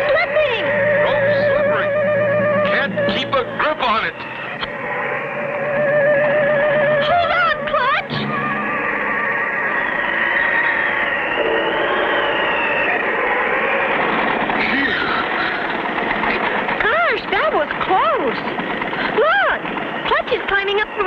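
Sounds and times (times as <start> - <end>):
cartoon music with wavering tones: 0.0 - 10.1
short pitched whoops: 8.2 - 13.9.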